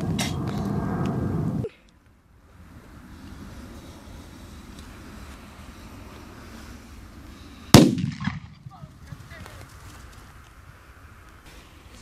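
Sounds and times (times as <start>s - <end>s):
wind noise on microphone: 0.0s - 1.7s
firecracker bang: 7.7s - 8.9s.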